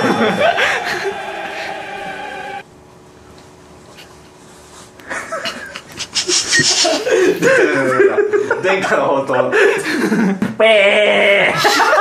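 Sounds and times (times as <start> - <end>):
people laughing: 0.0 - 2.6, 5.1 - 10.4, 11.4 - 12.0
people speaking: 6.8 - 9.8.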